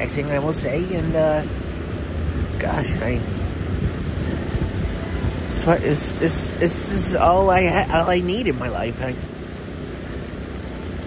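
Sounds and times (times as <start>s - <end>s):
low rumble: 0.0s - 11.0s.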